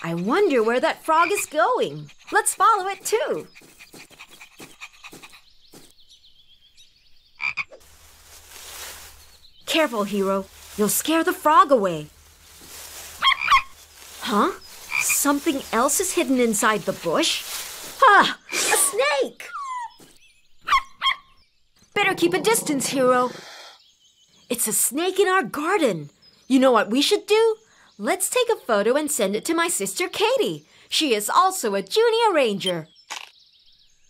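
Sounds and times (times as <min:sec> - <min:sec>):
cartoon frog croak: 0:07.4 - 0:07.8.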